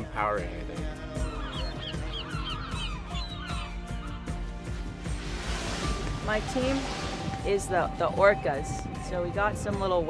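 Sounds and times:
gulls calling: 1.0s - 10.0s.

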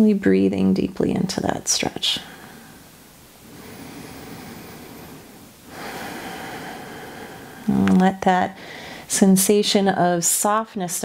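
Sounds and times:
person breathing deeply: 2.2s - 7.7s, 8.6s - 9.1s.

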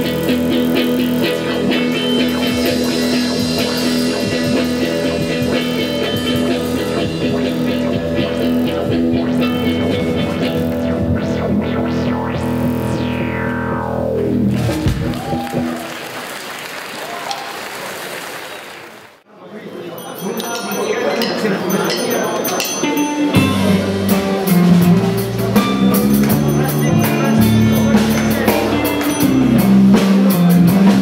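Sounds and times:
guitar note sliding down: 0.0s - 15.8s
rock band playing: 0.0s - 16.1s, 22.6s - 31.0s
even noise: 7.4s - 16.4s.

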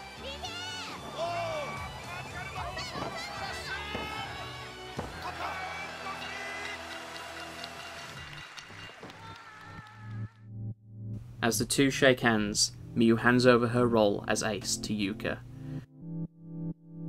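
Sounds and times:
background music: 0.0s - 17.0s
people shouting: 0.1s - 7.3s, 9.0s - 10.3s.

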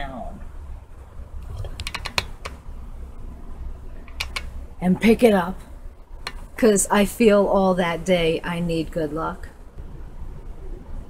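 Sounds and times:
low steady hum: 0.0s - 11.0s
light sharp clicks and taps: 4.1s - 4.5s.

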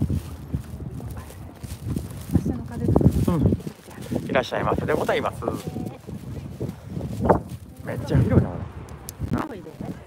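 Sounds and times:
footsteps on pavement: 0.0s - 8.3s.

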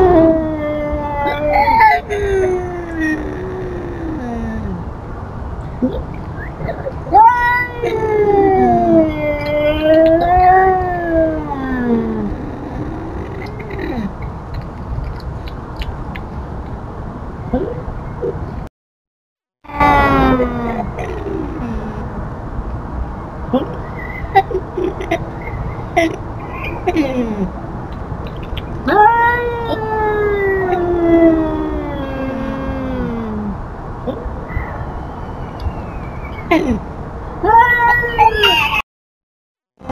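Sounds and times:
cat yowling: 0.0s - 4.4s, 7.1s - 14.0s, 28.8s - 33.5s.

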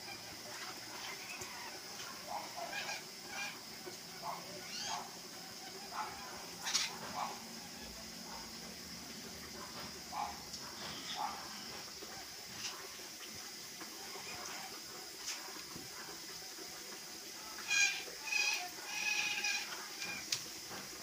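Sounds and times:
toucan calls: 1.0s - 8.4s, 10.1s - 11.8s, 17.6s - 20.3s.

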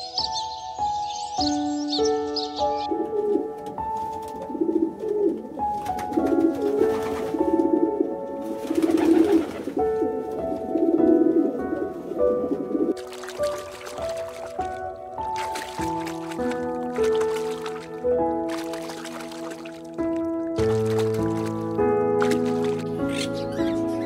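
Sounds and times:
pigeons cooing: 2.8s - 13.0s.

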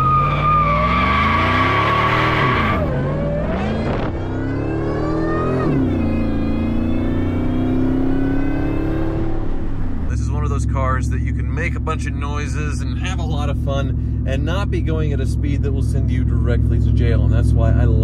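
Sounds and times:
truck engine accelerating hard: 0.0s - 18.0s.

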